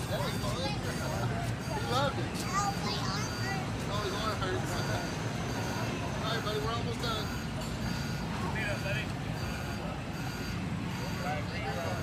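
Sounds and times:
distant voices: 0.0s - 12.0s
low mechanical hum: 0.0s - 12.0s.

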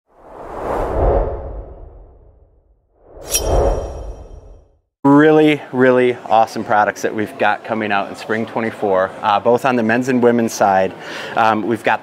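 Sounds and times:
whoosh transition effect: 0.1s - 4.8s.

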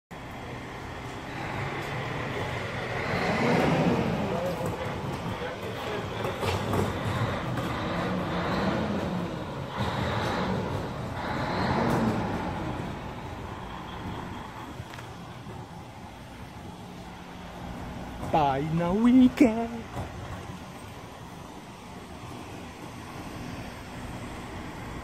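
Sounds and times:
vehicle engine humming: 0.1s - 25.0s.

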